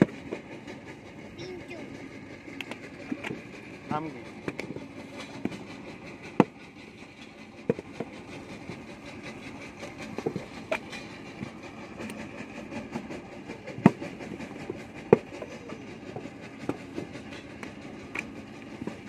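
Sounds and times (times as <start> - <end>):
steady background rumble: 0.0 - 19.0.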